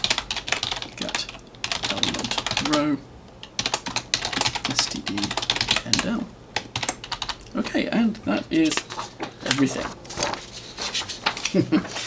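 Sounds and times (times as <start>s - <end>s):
fast typing on keyboard: 0.0s - 2.8s, 3.4s - 10.4s.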